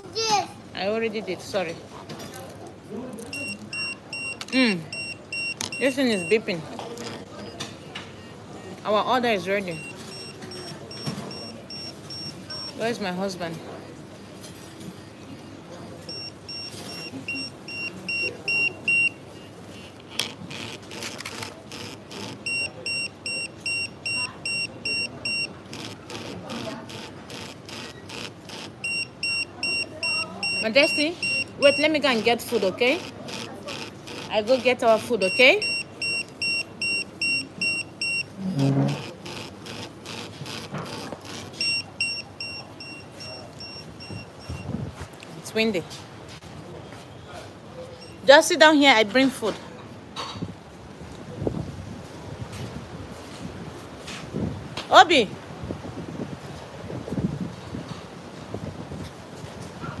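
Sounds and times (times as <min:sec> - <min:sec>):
pager short high beeps: 0:03.3 - 0:08.7, 0:09.7 - 0:12.8, 0:16.1 - 0:19.9, 0:20.5 - 0:44.7
pager buzzing rattle: 0:20.0 - 0:29.4, 0:30.0 - 0:38.2, 0:38.8 - 0:42.6.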